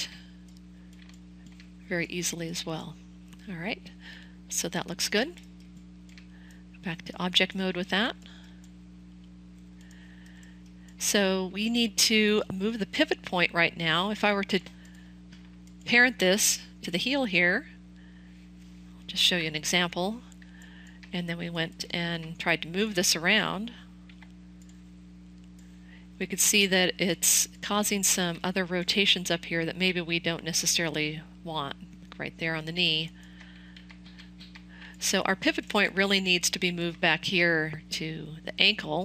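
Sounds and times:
low electrical hum: 0.0 - 39.0
computer mouse clicks: 33.0 - 34.9.

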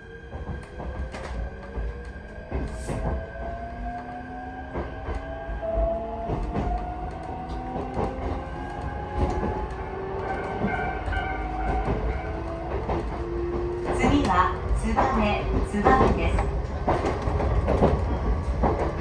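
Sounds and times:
wheels clicking over rails: 0.3 - 19.0.

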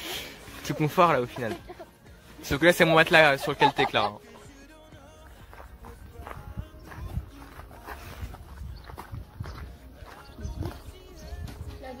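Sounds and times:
faint background music: 0.0 - 12.0
footsteps on paved path: 0.1 - 12.0.

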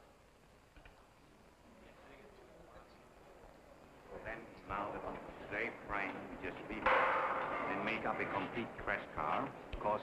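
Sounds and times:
faint background talk: 0.0 - 6.9.

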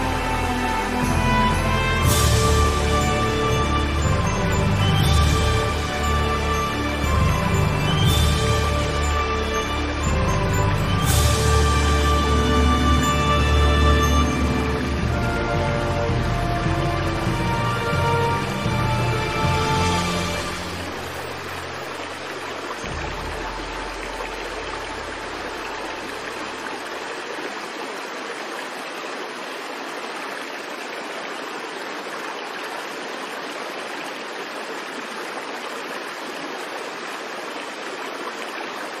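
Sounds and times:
low sustained music notes: 0.0 - 27.1
rushing water: 0.0 - 39.0.

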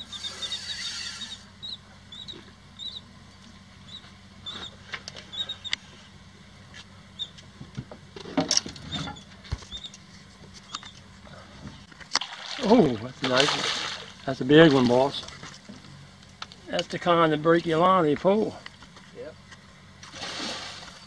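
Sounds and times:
fishing reel squeaking and clicking: 0.0 - 1.5
fish splash: 12.1 - 14.2, 20.0 - 21.0.

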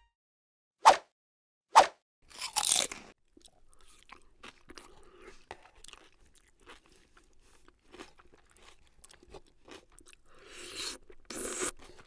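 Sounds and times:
loud crunching bite: 2.3 - 7.3, 7.9 - 12.0
crackly chewing: 2.3 - 12.0.

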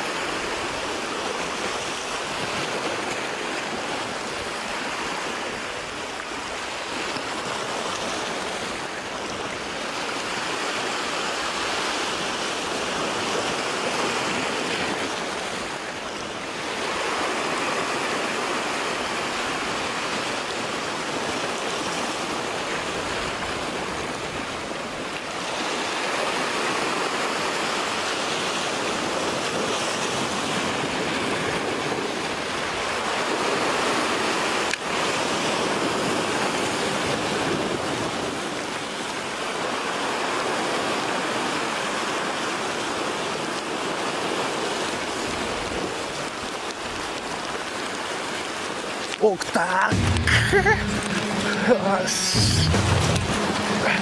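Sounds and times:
surf washing on rocky shore: 0.0 - 54.0.

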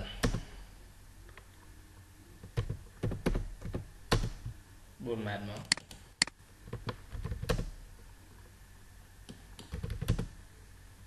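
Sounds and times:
keyboard typing: 2.4 - 4.6, 5.6 - 7.8, 9.3 - 10.4.

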